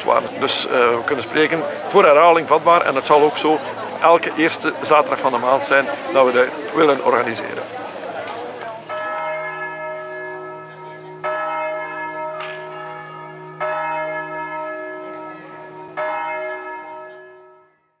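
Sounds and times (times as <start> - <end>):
church bell ringing: 8.8 - 18.0.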